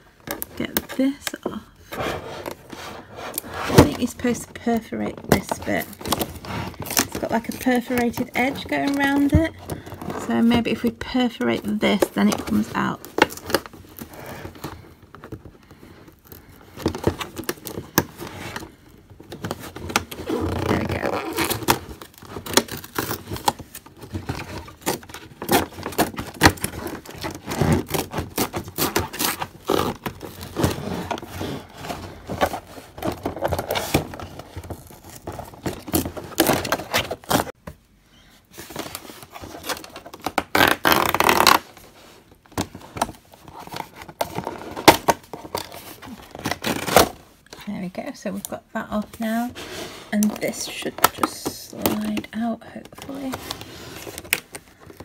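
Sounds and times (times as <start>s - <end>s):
cardboard tearing and scraping: 1.8s - 14.8s, 19.4s - 37.6s, 38.6s - 47.2s, 53.0s - 55.0s.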